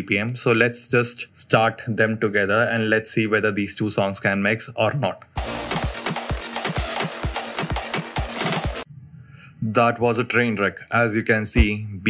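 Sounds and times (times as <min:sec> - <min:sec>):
clashing electronic dance tracks: 0:05.4 - 0:08.8.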